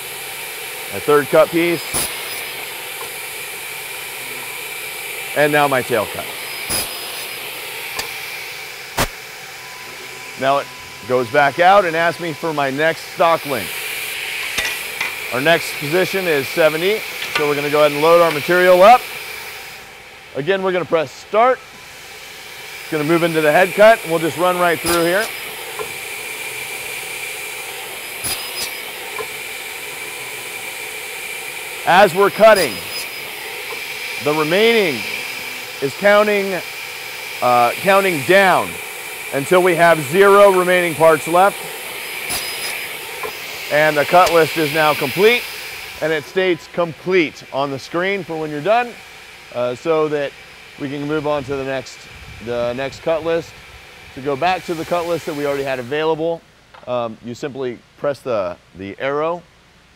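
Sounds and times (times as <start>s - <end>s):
workshop machinery hiss: 0.0s - 58.6s
faint high whine: 0.9s - 19.1s, 22.9s - 57.4s
sharp click: 9.0s - 9.2s.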